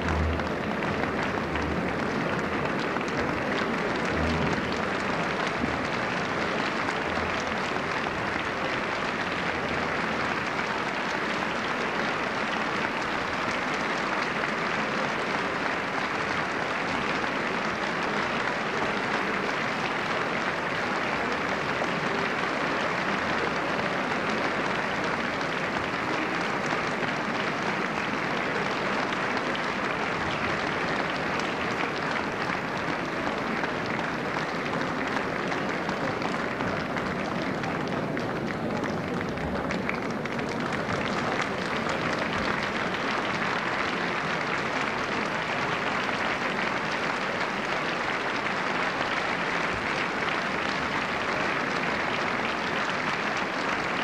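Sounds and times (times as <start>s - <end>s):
audience applauding: 0.0s - 54.0s.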